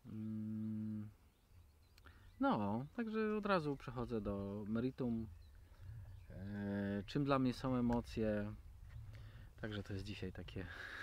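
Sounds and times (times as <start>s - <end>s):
man humming hesitantly: 0.0s - 1.2s.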